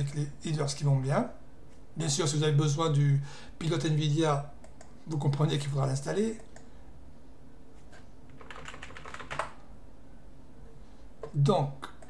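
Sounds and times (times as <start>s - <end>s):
computer keyboard keystrokes: 8.3s - 9.6s.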